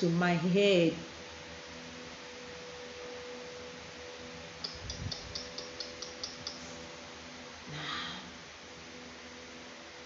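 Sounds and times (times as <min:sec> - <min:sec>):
faint steady hum: 0:00.0 - 0:10.0
room hiss: 0:00.0 - 0:10.0
short high sharp ticks: 0:04.6 - 0:06.7.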